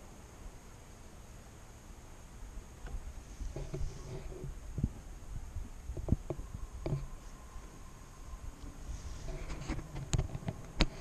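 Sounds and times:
low rumble: 0:03.0 - 0:11.0
dull thumps and knocks: 0:05.9 - 0:07.1.

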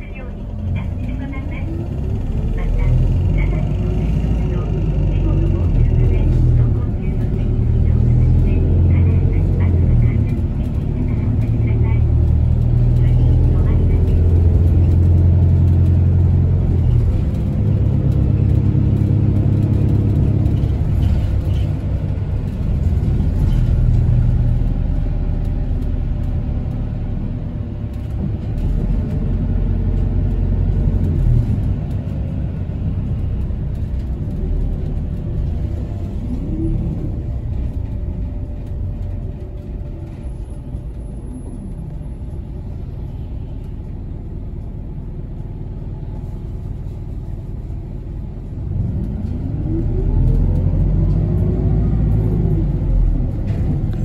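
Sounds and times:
bus engine: 0:00.0 - 0:54.0
road noise: 0:00.0 - 0:54.0.

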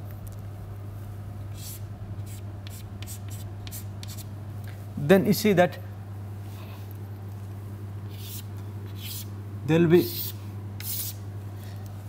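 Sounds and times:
low electrical hum: 0:00.0 - 0:12.0
chalk scratching on blackboard: 0:01.5 - 0:04.3, 0:08.1 - 0:09.3, 0:10.0 - 0:11.2.

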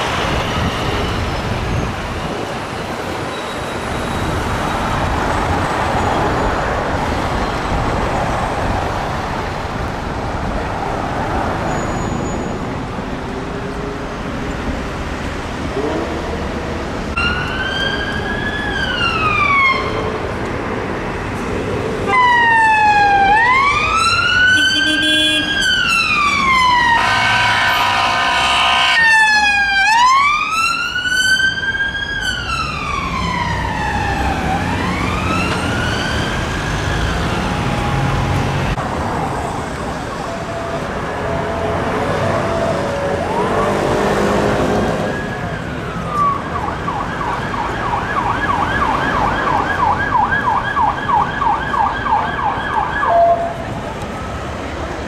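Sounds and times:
traffic noise: 0:00.0 - 0:55.0
police siren wailing: 0:17.1 - 0:20.3, 0:22.0 - 0:38.8, 0:40.0 - 0:54.8
siren yelping: 0:17.2 - 0:20.1, 0:22.1 - 0:38.2, 0:45.0 - 0:53.7.

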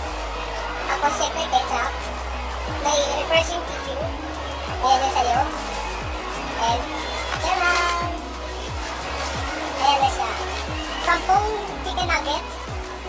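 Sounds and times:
crowd voices: 0:00.0 - 0:13.0
music with steady beat: 0:00.0 - 0:13.0.

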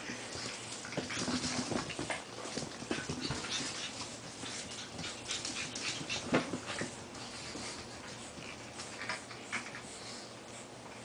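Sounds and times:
puppy sounds: 0:00.0 - 0:11.0
rustling and scuffling: 0:00.1 - 0:10.6.

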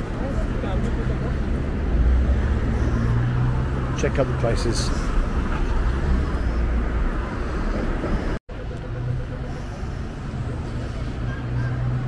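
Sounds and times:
cars passing: 0:00.0 - 0:12.0.

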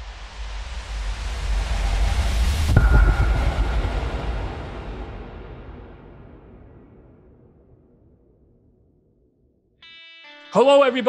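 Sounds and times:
rushing noise swell: 0:00.4 - 0:07.5
impact with deep boom: 0:02.4 - 0:08.2
short ringing tone: 0:02.8 - 0:04.5.

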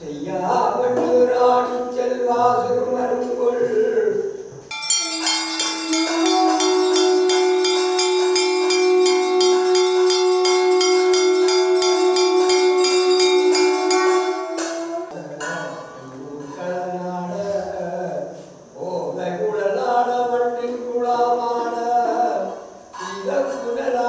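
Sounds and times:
devotional chanting: 0:00.0 - 0:24.0
rapid bell ringing: 0:04.7 - 0:14.9
loud steady held tone: 0:04.7 - 0:16.0.

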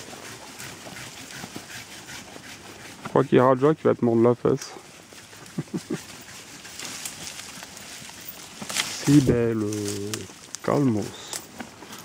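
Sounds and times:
branches rustling and swishing: 0:00.0 - 0:12.0
twigs crackling: 0:00.0 - 0:12.0.

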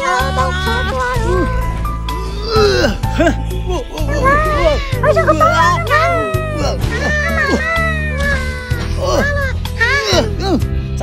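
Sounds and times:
music with low sustained notes: 0:00.0 - 0:11.0
high wailing cries: 0:04.1 - 0:08.8.

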